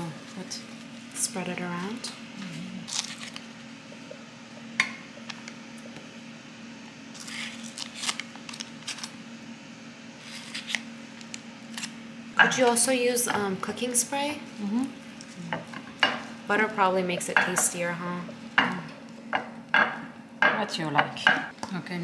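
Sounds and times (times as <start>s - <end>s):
wrapper rustling: 2.8s - 3.5s, 7.1s - 9.2s.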